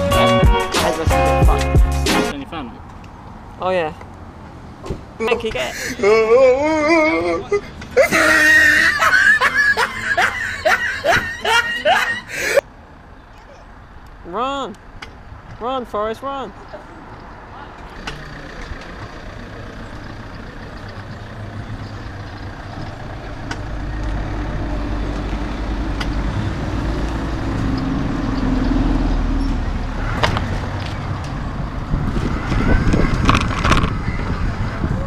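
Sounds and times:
bus engine rumbling: 0.0s - 35.0s.

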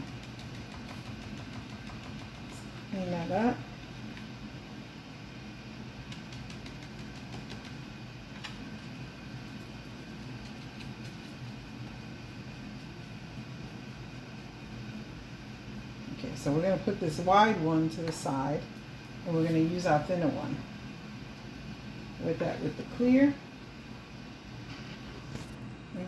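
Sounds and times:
low room hum: 0.0s - 26.0s.

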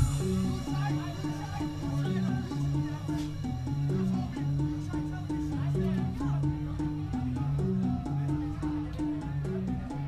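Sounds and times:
house music: 0.0s - 10.0s.

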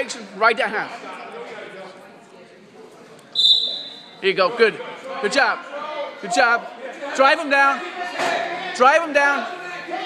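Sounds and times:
referee whistle blast: 3.4s - 4.1s.

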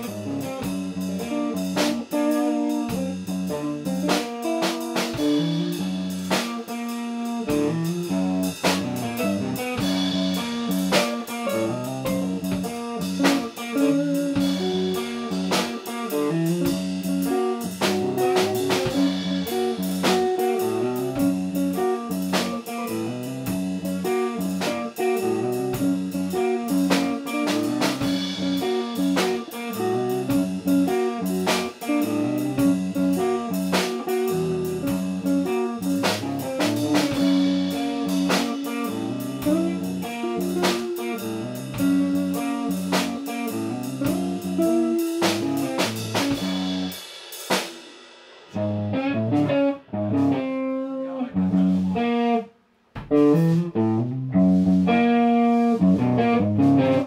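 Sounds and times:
electric guitar playing: 0.0s - 47.0s, 48.6s - 57.0s
drum kit playing: 0.0s - 57.0s.

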